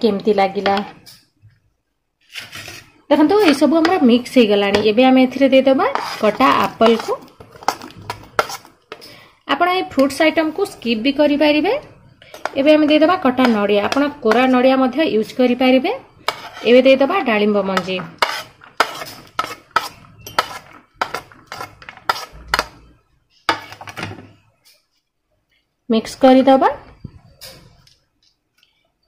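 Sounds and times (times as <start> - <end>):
metal spoon scraping ceramic plate: 5.9 - 9.2, 16.2 - 16.9, 18.2 - 22.8.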